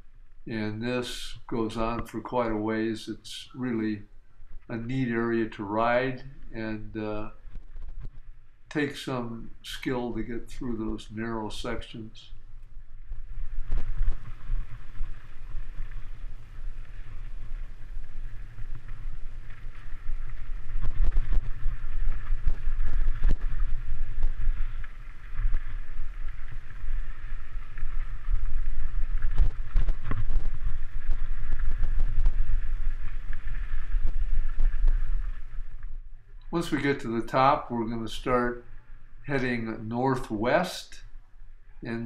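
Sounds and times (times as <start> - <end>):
wind rumble on microphone: 0.0 - 42.0.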